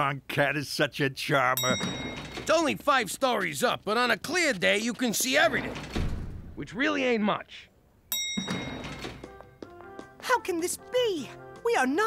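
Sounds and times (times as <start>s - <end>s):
elevator chime ding: 1.6s - 2.4s, 8.1s - 9.3s.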